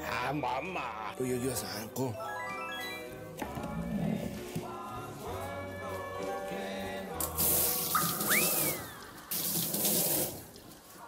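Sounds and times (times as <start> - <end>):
water running from a tap: 7.3 - 10.6
brief high rising tone: 8.0 - 9.0.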